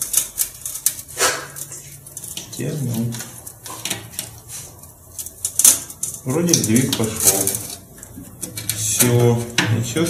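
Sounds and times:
short scrape: 1.1 - 1.6.

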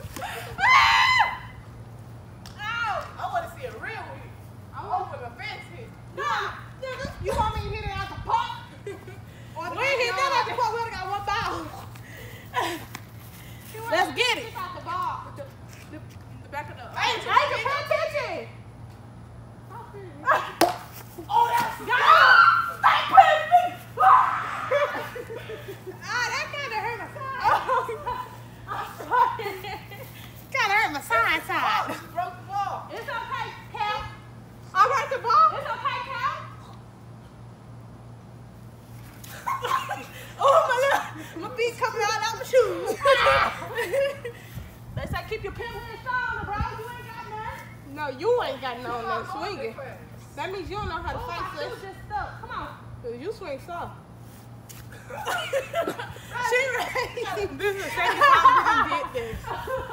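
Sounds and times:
girls shrieking and laughing: 0.0 - 1.7, 20.1 - 34.1, 39.2 - 44.8, 54.9 - 59.9
girls shouting: 0.2 - 1.6, 21.2 - 25.5, 42.2 - 43.9
girls shrieking: 0.2 - 1.6, 21.2 - 26.3, 42.7 - 43.9
water balloon smacking toy bat: 20.6 - 21.8.

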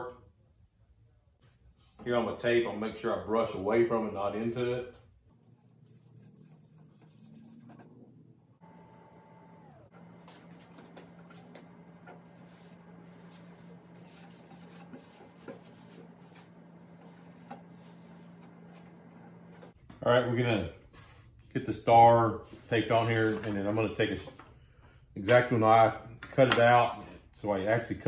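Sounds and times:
steady low hum: 5.1 - 21.8.

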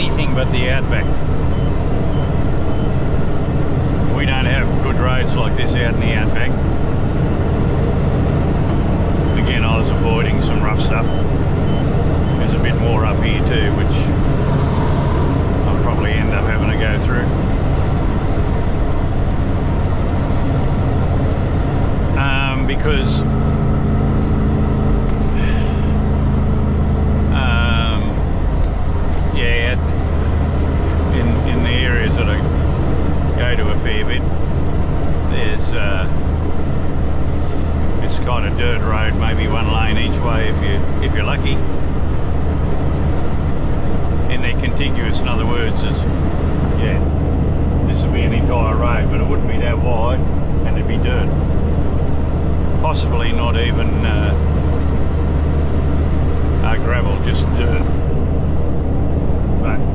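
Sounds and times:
held hum: 0.0 - 59.9
road noise: 0.0 - 59.9
truck diesel engine drone: 0.0 - 59.9.

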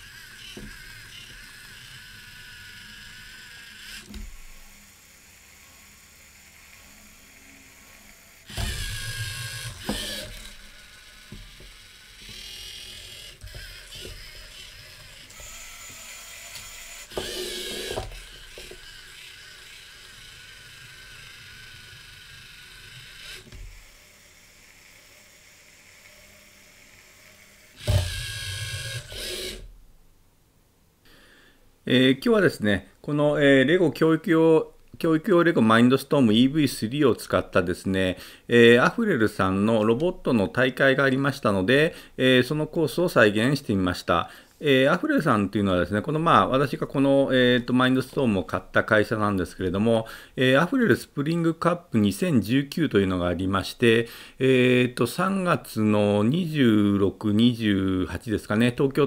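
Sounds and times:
robot motors whirring: 0.0 - 29.7.

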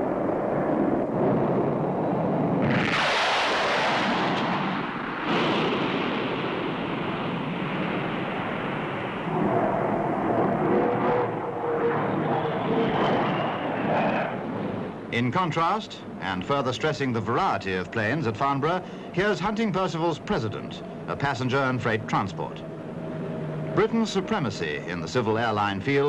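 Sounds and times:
faint jet whine: 0.0 - 26.0
jet engine roar: 0.0 - 26.0.

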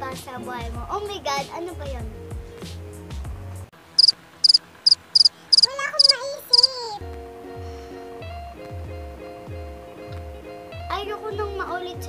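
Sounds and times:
background music: 0.0 - 3.7, 7.0 - 12.0
cricket chirping: 4.0 - 6.8.

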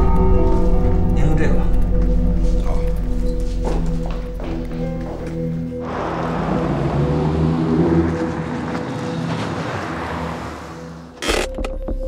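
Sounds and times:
car passing by: 5.8 - 11.2.

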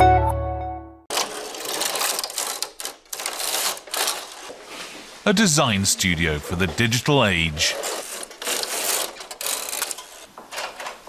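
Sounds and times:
knitting machine carriage clattering: 1.1 - 4.5.

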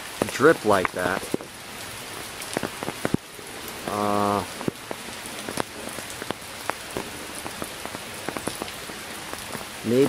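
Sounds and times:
water dripping onto roof: 0.0 - 10.0
drizzle patter: 0.1 - 1.6, 2.3 - 10.0.

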